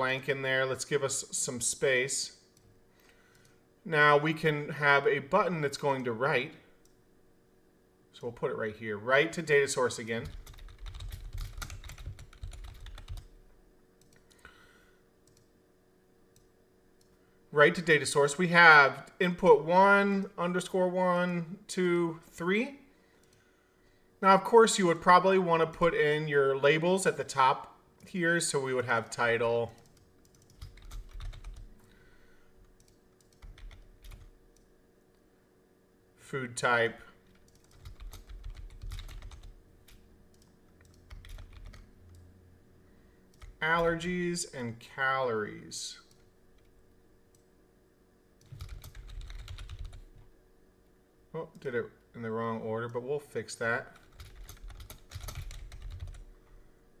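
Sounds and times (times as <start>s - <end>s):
typing on computer keyboard: 10.2s - 13.3s, 29.7s - 31.7s, 32.8s - 34.6s, 37.3s - 42.2s, 48.4s - 50.1s, 54.0s - 56.2s.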